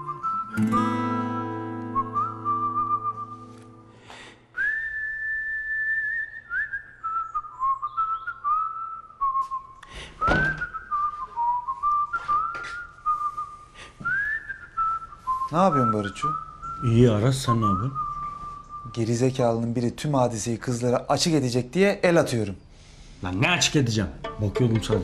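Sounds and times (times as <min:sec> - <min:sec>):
person whistling a tune: 0:00.0 - 0:03.9, 0:04.6 - 0:19.0
guitar chord ringing: 0:00.6 - 0:02.8.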